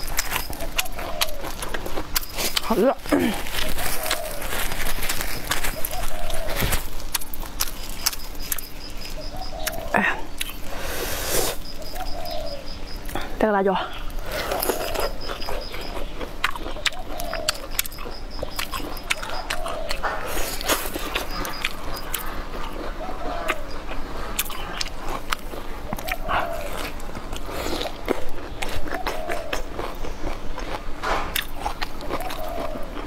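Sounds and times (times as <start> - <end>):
person chewing food: 0.0 - 33.0.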